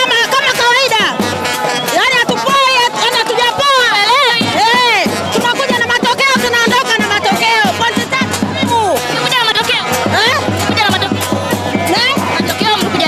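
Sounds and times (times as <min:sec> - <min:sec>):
quick steady drumbeat: 0:00.0 - 0:13.0.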